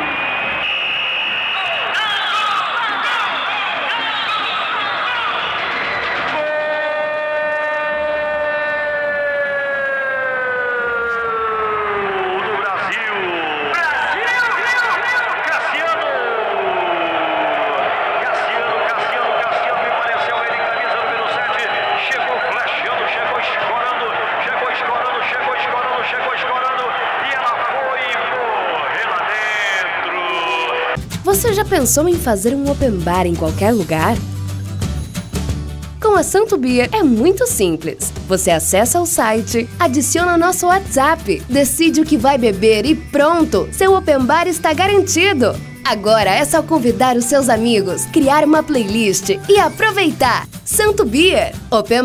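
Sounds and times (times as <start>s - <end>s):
man shouting goal commentary: 1.6s - 5.5s, 6.3s - 8.8s, 10.1s - 31.0s
commentator shouting goal cry: 12.0s - 17.0s.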